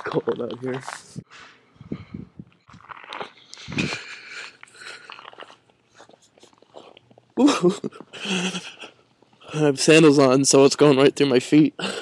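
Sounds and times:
footsteps crunching in icy snow: 0.0s - 1.4s, 2.6s - 7.2s.

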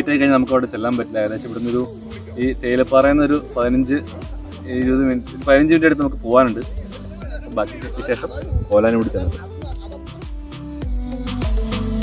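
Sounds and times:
man talking: 0.0s - 10.1s
high-pitched insect drone: 0.0s - 12.0s.

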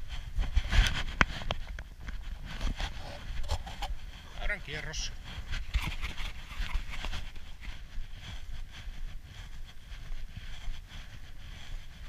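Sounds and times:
footsteps crunching on packed snow: 0.0s - 12.0s
wind noise on microphone: 0.0s - 12.0s.

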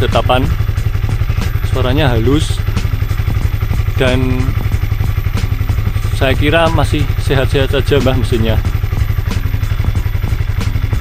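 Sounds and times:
light engine ticks: 0.0s - 11.0s
motorcycle engine idling: 0.0s - 11.0s.

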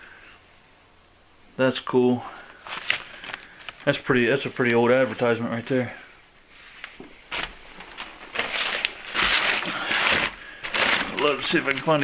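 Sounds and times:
newspapers rustling and crinkling: 2.5s - 5.8s, 6.5s - 12.0s.

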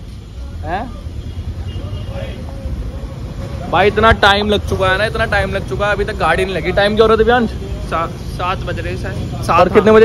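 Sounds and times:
vehicle engines idling: 0.0s - 10.0s.

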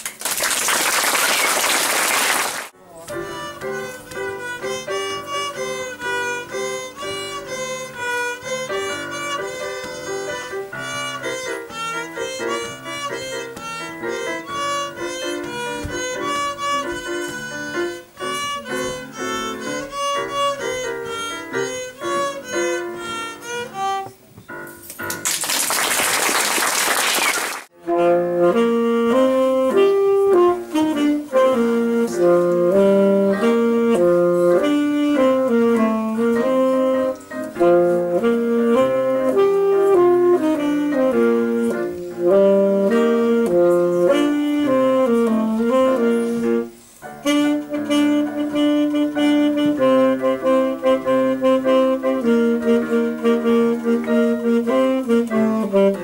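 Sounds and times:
applause: 0.0s - 2.7s, 25.1s - 27.7s
alto saxophone melody: 1.6s - 24.2s, 27.3s - 56.0s
violin: 2.7s - 24.2s, 27.8s - 56.0s
digital piano accompaniment: 2.7s - 25.9s, 27.7s - 56.0s.

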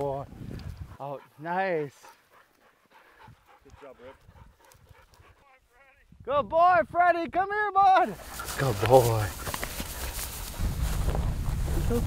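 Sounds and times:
dog panting: 0.6s - 5.7s, 8.2s - 10.4s
scuffing in grass: 8.1s - 12.0s.

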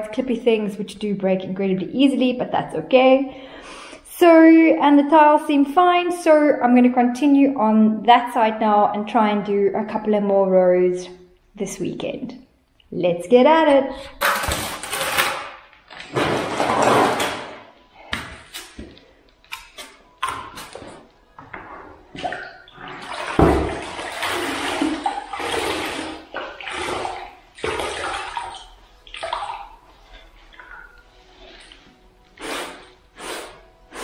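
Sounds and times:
water sloshing in a bucket: 15.9s - 19.0s, 19.6s - 33.1s.

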